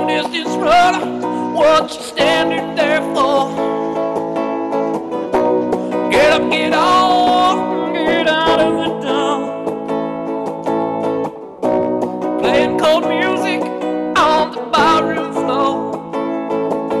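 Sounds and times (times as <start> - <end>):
man singing: 0.0 - 4.0, 5.8 - 9.7, 12.4 - 16.3
guitar chords: 0.0 - 17.0.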